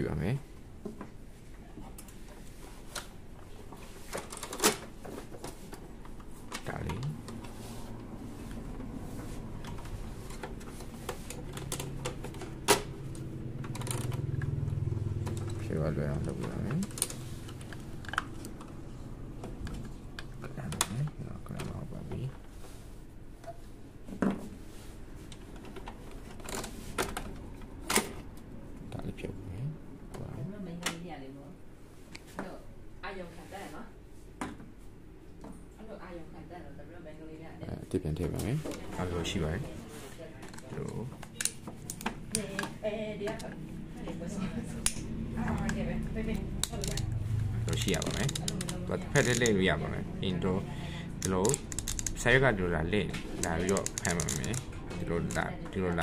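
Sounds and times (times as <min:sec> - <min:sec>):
man speaking: 0:00.0 - 0:00.4, 0:06.6 - 0:07.2, 0:15.6 - 0:16.9, 0:20.4 - 0:22.4, 0:37.6 - 0:39.7, 0:47.6 - 0:56.0
plastic parts being handled: 0:46.6 - 0:49.7, 0:51.2 - 0:52.4, 0:53.1 - 0:55.6
faint clicks of plastic parts: 0:51.2 - 0:52.3, 0:53.2 - 0:55.4.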